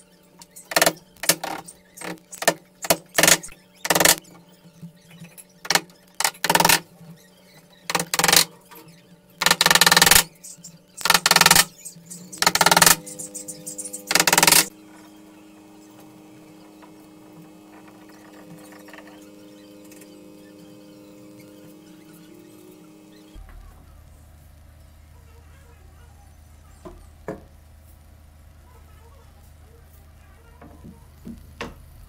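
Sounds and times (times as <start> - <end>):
faint steady hum: 0.0 - 32.0.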